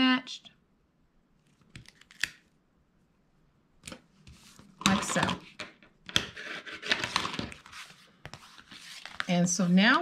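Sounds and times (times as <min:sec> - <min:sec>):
spatula rubbing paper: 0:06.4 - 0:10.0.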